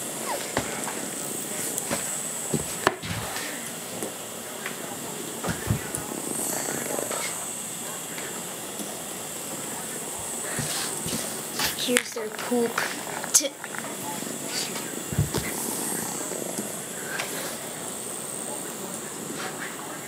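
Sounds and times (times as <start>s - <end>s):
vibrating toy bugs buzzing: 5.2s - 20.0s.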